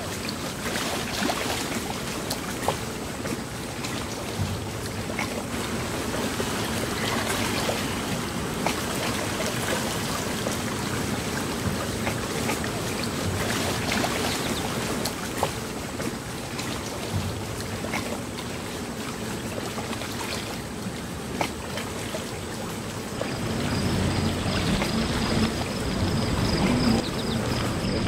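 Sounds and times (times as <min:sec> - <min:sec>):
motorboat running: 0:00.0 - 0:28.0
small waves lapping: 0:00.0 - 0:28.0.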